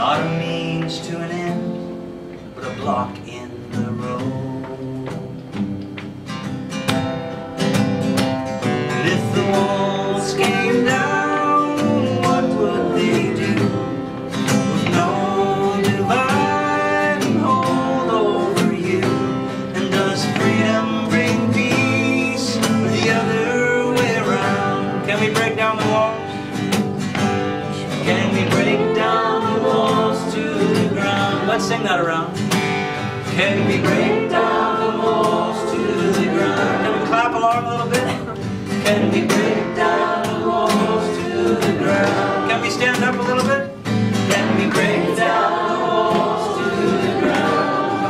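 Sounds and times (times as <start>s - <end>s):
man singing folk song: 0.0s - 1.9s, 2.6s - 5.4s, 8.6s - 48.0s
acoustic guitar strummed: 0.0s - 48.0s.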